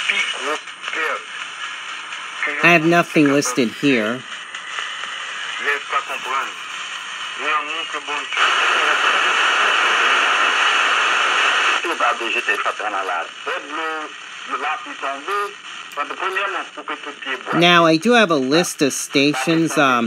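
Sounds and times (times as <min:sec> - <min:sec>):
loud radio static hiss: 0:00.0 - 0:20.0
radio talk broadcast: 0:00.0 - 0:20.0.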